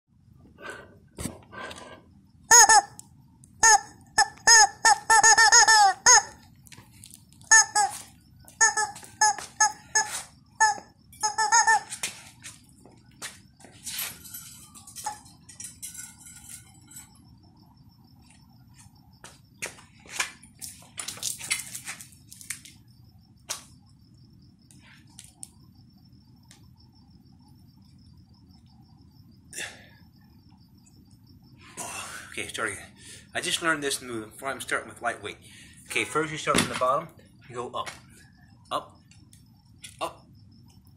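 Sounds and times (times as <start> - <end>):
faint high-pitched chirring: 0.1 - 40.9
rubber chicken squawking: 3.6 - 6.4.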